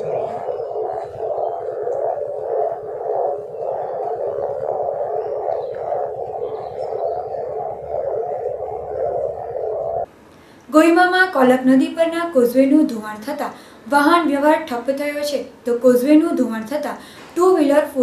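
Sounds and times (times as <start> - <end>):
steady rushing drone: 0.0 - 10.1.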